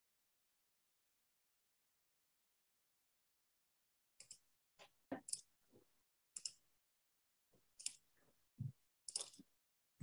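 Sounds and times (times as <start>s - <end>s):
mouse and keyboard clicking: 6.4s - 6.6s, 9.1s - 9.4s.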